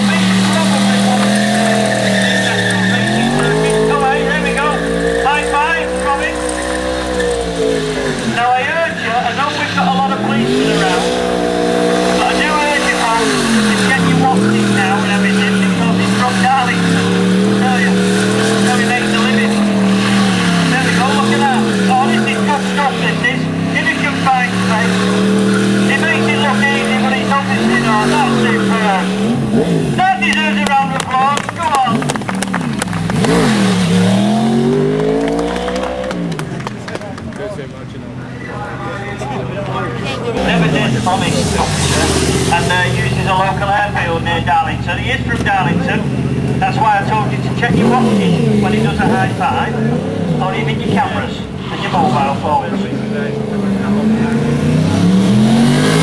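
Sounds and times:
tyre squealing on tarmac: 0.0s - 36.6s
motorcycle engine revving: 0.0s - 37.2s, 39.3s - 56.0s.

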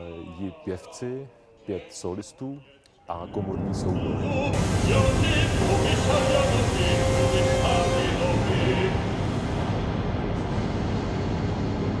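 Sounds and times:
opera voice singing held notes: 2.6s - 9.2s
low dense orchestral drone: 3.4s - 12.0s.

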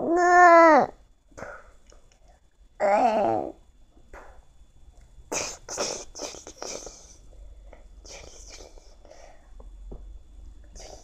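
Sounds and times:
child making hissing bursts: 5.3s - 7.2s, 8.0s - 9.2s
faint breath: 6.6s - 9.7s.

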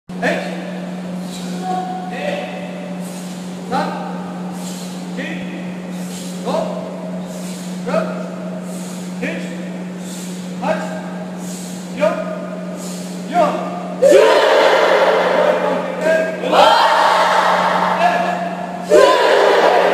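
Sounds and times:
steady low hum: 0.1s - 19.9s
karate drill shouts: 13.3s - 17.4s, 18.0s - 19.9s.

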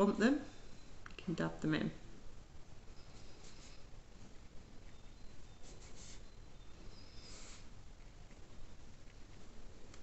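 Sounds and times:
low steady hiss: 0.0s - 10.0s
brush dabbing on paper: 2.9s - 10.0s.

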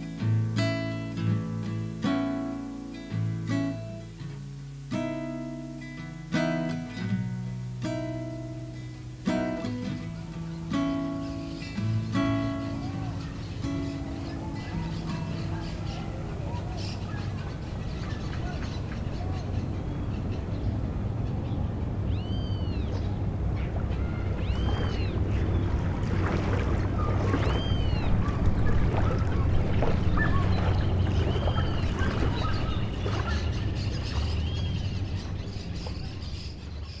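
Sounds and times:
bird calls: 8.2s - 37.0s
low rumble: 15.9s - 36.8s
waves lapping on pebbles: 22.6s - 36.9s.

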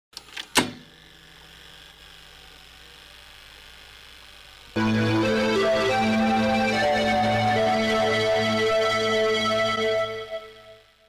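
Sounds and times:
faint electrical hum with hiss: 0.2s - 11.0s.

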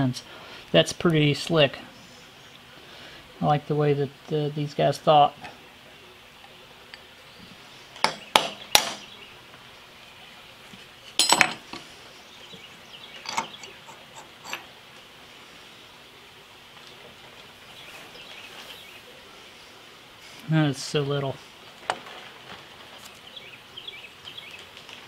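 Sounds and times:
metal parts clinking and knocking: 11.2s - 11.8s, 13.2s - 14.7s.

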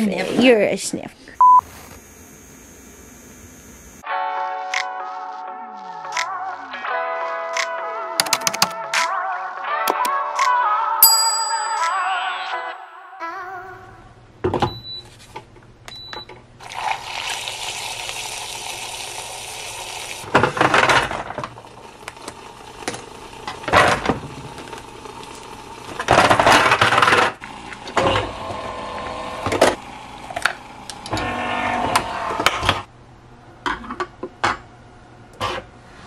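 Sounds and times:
coffee machine running: 1.4s - 4.0s, 16.6s - 32.9s
glass and metal clinking: 11.0s - 12.2s.

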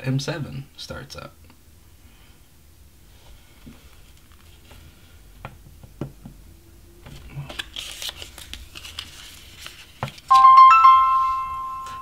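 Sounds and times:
smartphone startup chime: 10.3s - 12.0s.

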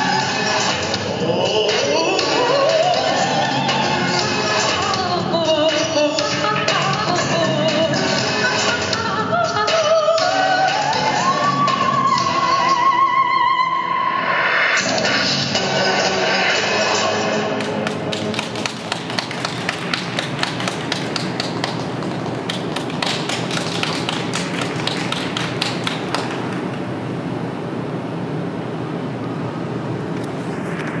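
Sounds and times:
audience clapping: 17.5s - 27.0s.

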